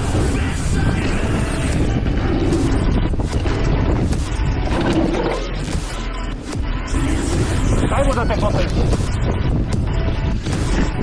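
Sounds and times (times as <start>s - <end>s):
wind buffeting microphone: 0.0s - 5.7s.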